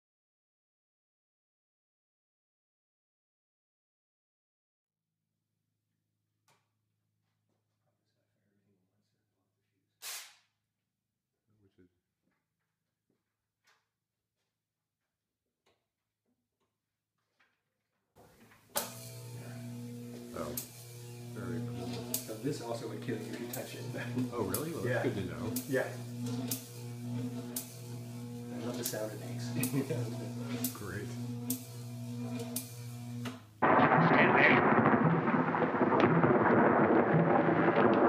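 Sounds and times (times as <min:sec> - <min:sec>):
sharp electrical crack: 0:10.0 - 0:10.4, 0:18.8 - 0:38.0
electrical buzz: 0:18.7 - 0:38.0
electrical hum with held tones: 0:18.8 - 0:34.5.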